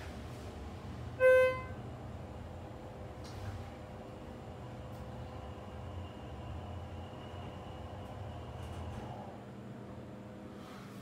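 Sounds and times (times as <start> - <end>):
elevator cab hum: 0.0 - 10.5.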